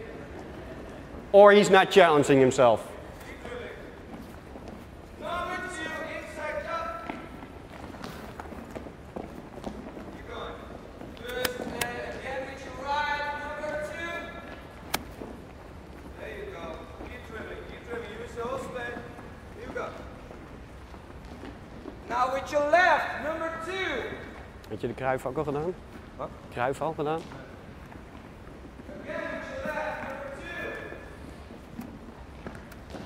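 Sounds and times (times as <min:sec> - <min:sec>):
balls dribbled on wooden floor: 0:06.6 - 0:12.3, 0:13.6 - 0:22.2, 0:27.1 - 0:33.0.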